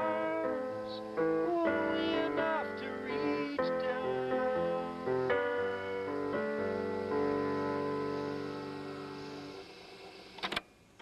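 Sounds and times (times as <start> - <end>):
piano chord: 0.0 - 9.9.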